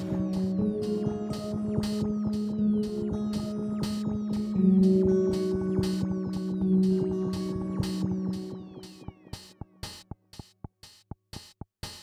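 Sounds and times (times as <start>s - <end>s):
low synth chord: 0.0s - 9.3s
hi-hat-like hits: 3.3s - 12.0s.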